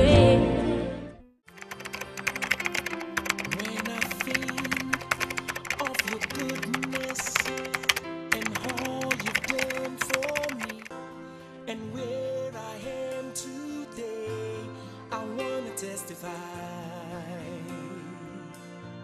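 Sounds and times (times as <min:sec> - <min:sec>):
background music: 0:00.0 - 0:19.0
keyboard typing clicks: 0:01.5 - 0:10.9.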